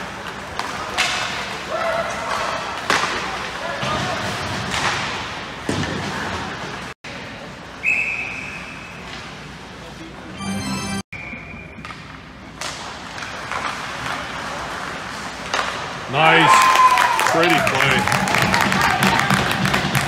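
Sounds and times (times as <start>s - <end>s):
sticks and puck striking boards: 2.3s - 6.3s
shrill referee whistle: 7.8s - 9.0s, 11.2s - 11.8s
spectators' voices: 17.3s - 19.7s.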